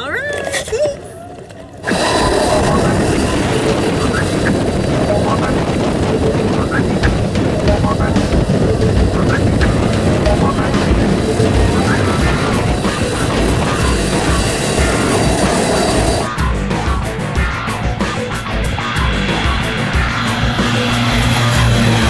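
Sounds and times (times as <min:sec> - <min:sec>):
prop wash buffeting microphone: 0:00.0 - 0:22.0
propeller engines running loudly: 0:00.9 - 0:22.0.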